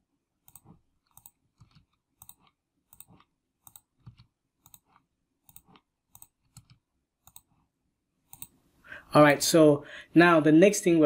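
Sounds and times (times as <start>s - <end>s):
faint computer mouse clicks: 0.5s - 7.5s, 8.3s - 8.6s.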